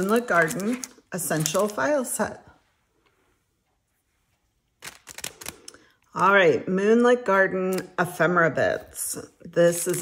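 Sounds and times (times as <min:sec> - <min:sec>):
plastic packaging crinkling: 0:00.0 - 0:02.2, 0:04.8 - 0:06.4.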